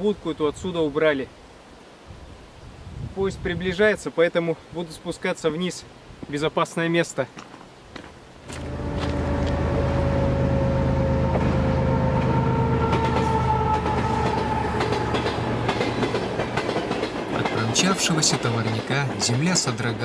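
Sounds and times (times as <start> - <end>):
faint falling whining tones: 8.5 - 15.7
freight train rumbling on rails: 8.5 - 20.0.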